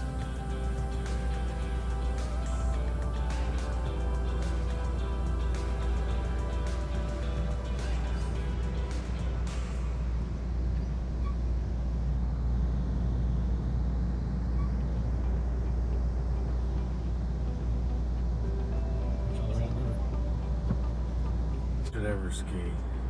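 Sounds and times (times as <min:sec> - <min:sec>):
train rumbling from inside coach: 0:05.0 - 0:23.0
faint passenger voices: 0:18.8 - 0:23.0.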